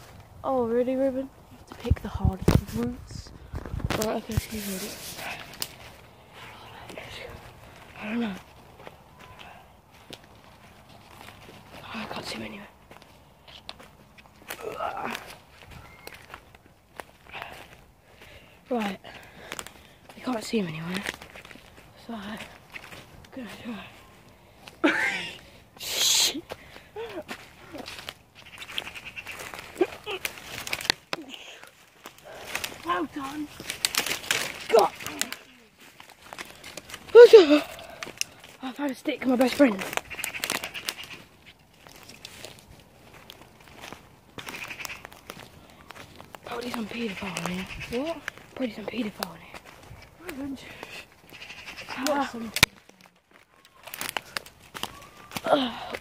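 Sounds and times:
footsteps through undergrowth: 0.0s - 56.0s
twigs and leaves crackling: 0.0s - 56.0s.

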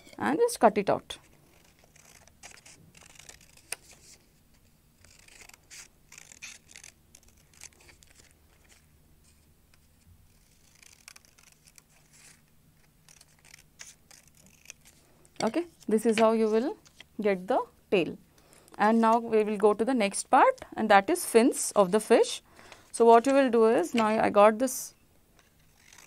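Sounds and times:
scissors snipping paper: 1.5s - 4.0s, 5.0s - 8.8s, 10.3s - 12.0s, 13.1s - 16.4s, 25.6s - 26.0s.

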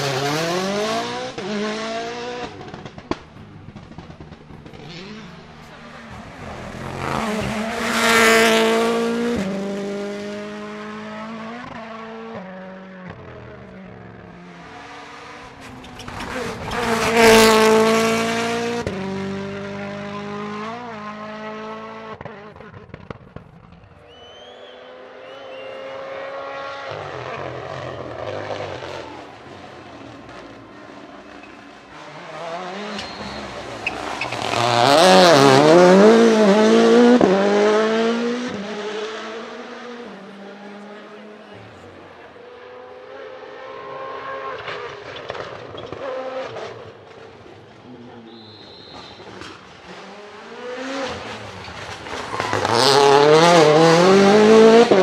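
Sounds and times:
rally cars revving past: 0.0s - 23.2s, 24.8s - 55.0s.

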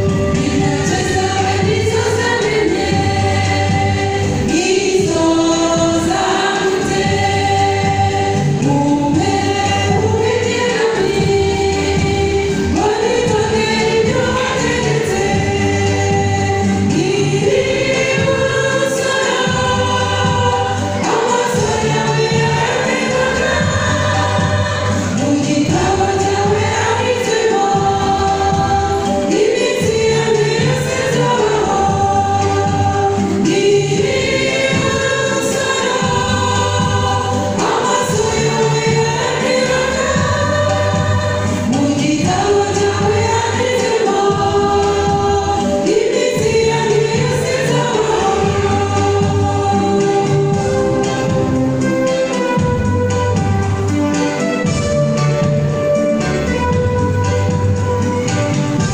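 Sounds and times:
church choir singing: 0.0s - 58.9s.

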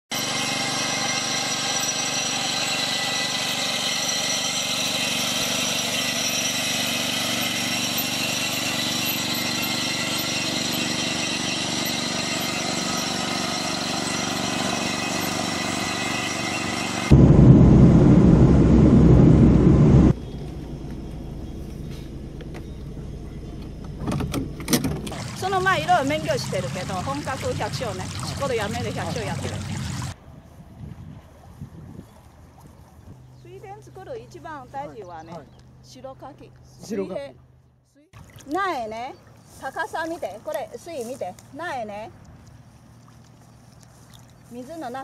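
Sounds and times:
small engine running: 0.1s - 17.2s, 25.0s - 30.2s
low rumble: 17.1s - 24.0s.

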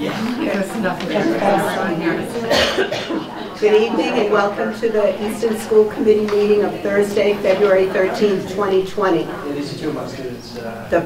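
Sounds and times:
people chattering: 0.0s - 11.0s
person coughing: 2.4s - 3.3s.

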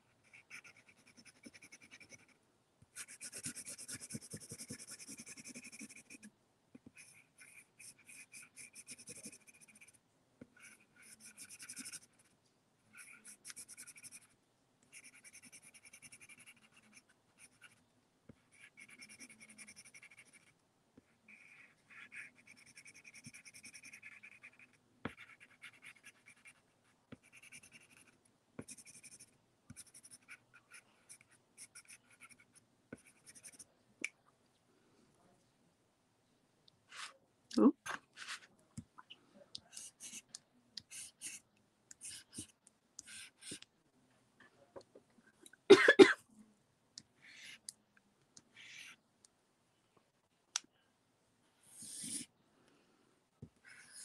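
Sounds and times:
pencil scratching on paper: 0.2s - 2.4s, 3.0s - 6.3s, 6.9s - 12.3s, 12.9s - 17.8s, 18.5s - 20.5s, 21.3s - 33.7s, 39.7s - 40.3s, 40.9s - 41.4s, 42.0s - 43.6s, 48.5s - 49.0s, 51.7s - 52.3s.

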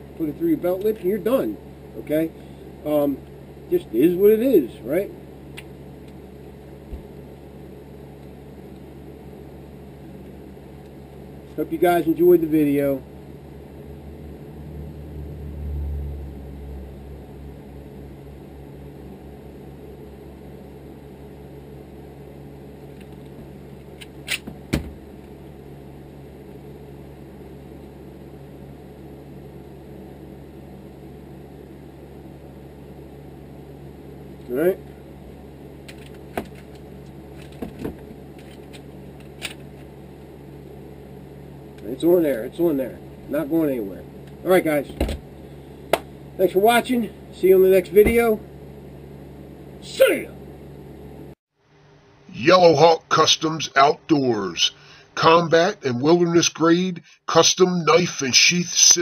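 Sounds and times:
steady low hum: 0.0s - 59.0s
low rumble: 13.6s - 18.5s.

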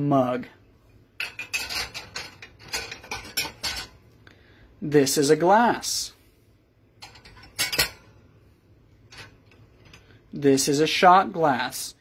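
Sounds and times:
dishes clinking in wire rack: 1.2s - 4.0s, 7.0s - 8.2s.

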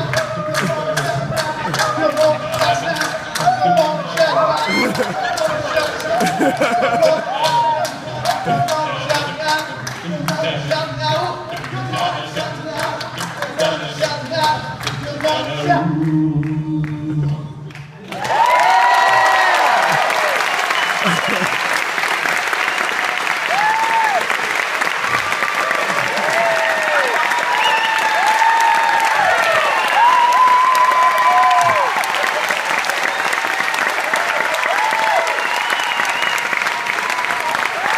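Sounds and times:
crowd whooping and cheering: 0.0s - 9.2s, 18.1s - 37.9s
audience applause: 0.0s - 15.6s, 18.0s - 37.9s.

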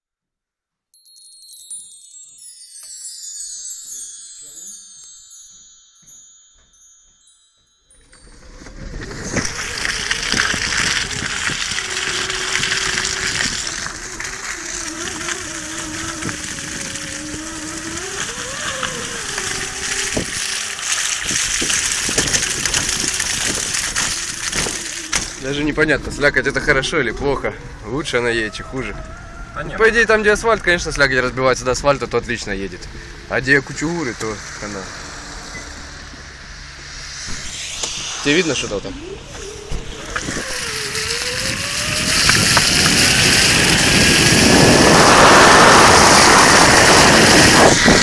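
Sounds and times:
chime jingle of falling tones: 1.0s - 11.1s
electric motor whine: 7.9s - 30.1s, 32.6s - 48.0s
tyre churning through slush: 8.2s - 25.9s, 40.0s - 48.0s.

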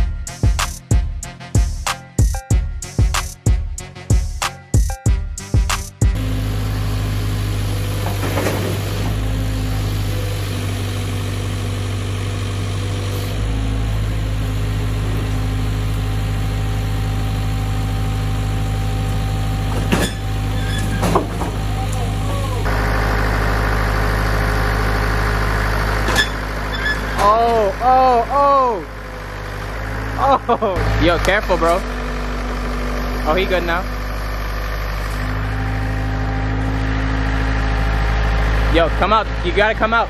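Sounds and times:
music with drum beat: 0.0s - 6.2s
excavator diesel engine running: 0.0s - 40.0s.

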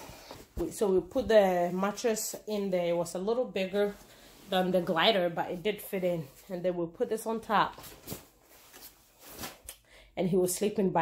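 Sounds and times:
soft fabric rustles: 0.0s - 9.7s.

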